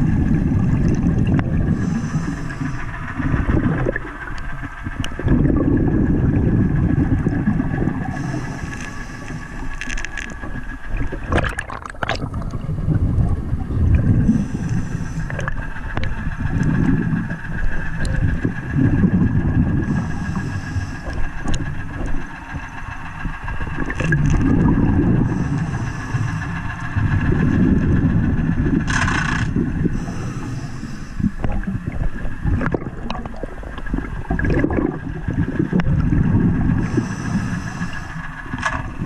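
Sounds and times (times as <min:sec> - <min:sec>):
steady high-pitched hum: 0:00.0 - 0:39.0
underwater bubbles rumbling: 0:00.0 - 0:39.0.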